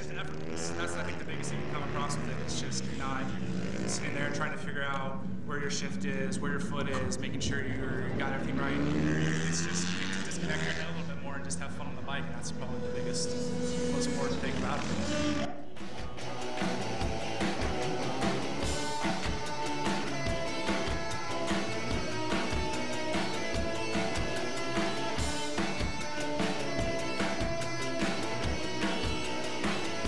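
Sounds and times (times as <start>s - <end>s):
man talking over loudspeakers: 0.0s - 15.1s
man's voice through speakers: 0.0s - 15.2s
steady low drone: 9.6s - 15.5s, 16.1s - 30.0s.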